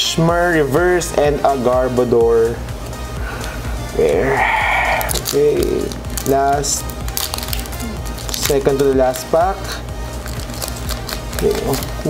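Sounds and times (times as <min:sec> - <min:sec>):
background music: 0:00.0 - 0:12.0
foil wrapper crinkling: 0:05.0 - 0:12.0.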